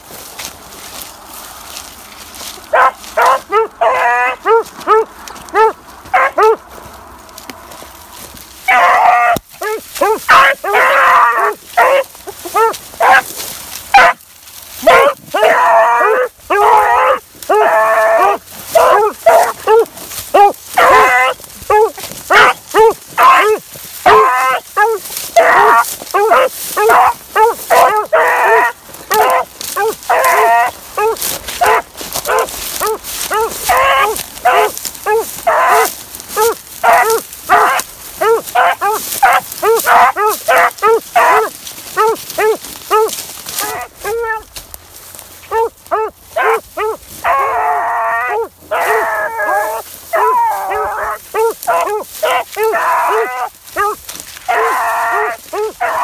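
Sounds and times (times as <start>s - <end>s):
beagles baying: 0.0s - 56.0s.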